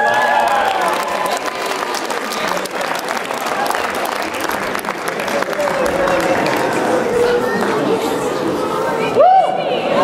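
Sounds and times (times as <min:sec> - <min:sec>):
audience applauding: 0:00.0 - 0:07.7.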